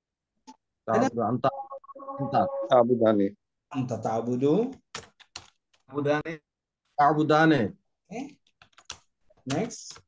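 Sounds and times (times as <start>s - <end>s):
person speaking: 0.9s - 3.2s
keyboard typing: 4.7s - 5.9s, 8.4s - 10.0s.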